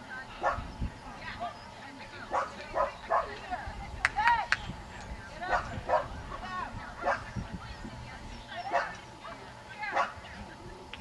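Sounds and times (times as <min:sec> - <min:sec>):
dogs yipping and barking: 0:08.6 - 0:10.2.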